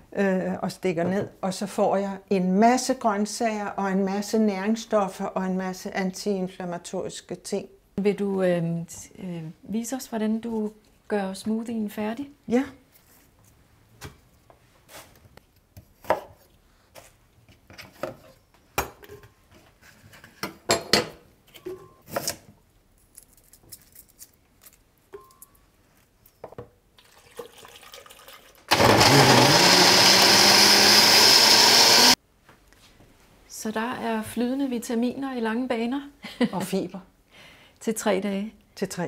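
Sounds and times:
blender running: 0:28.7 - 0:32.2.

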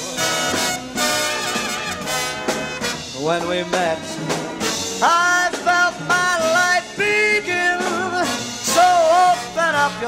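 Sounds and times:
big-band brass chord: 0:00.0 - 0:05.1.

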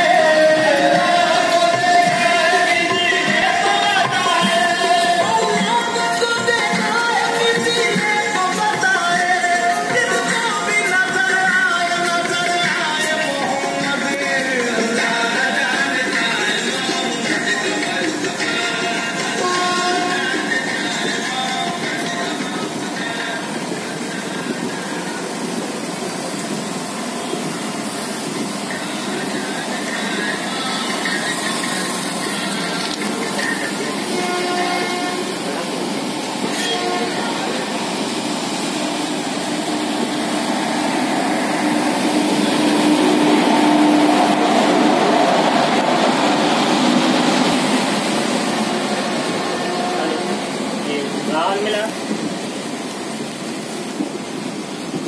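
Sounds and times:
train rumbling and rattling: 0:00.0 - 0:55.0.

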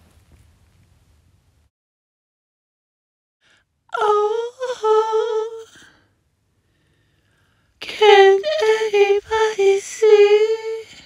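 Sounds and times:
woman singing held note: 0:07.8 - 0:11.0.

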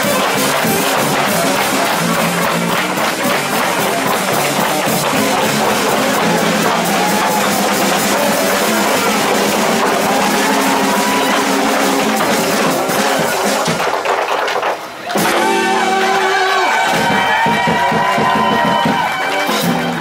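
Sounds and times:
trombone: 0:00.0 - 0:13.9, 0:15.2 - 0:17.4
jazz band playing: 0:00.0 - 0:14.0, 0:15.2 - 0:20.0
cymbals keeping a beat: 0:00.0 - 0:20.0.

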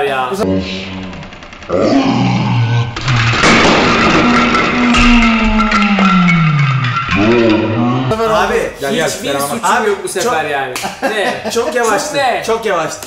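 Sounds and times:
block tower collapsing: 0:00.7 - 0:08.7.

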